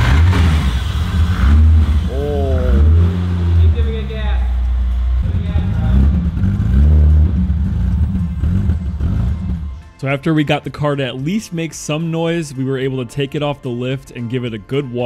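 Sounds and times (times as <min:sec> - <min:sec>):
car engine revving roughly: 0:00.0 - 0:09.8.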